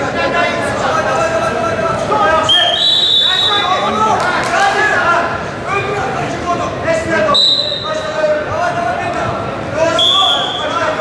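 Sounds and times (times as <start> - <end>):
shouting and chatter: 0.0 - 11.0
referee's whistle blast: 2.5 - 3.7, 7.4 - 7.9, 10.0 - 10.8.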